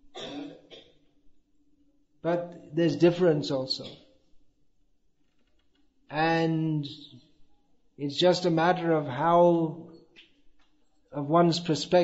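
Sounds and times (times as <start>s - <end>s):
man clearing his throat: 0.1s - 0.9s.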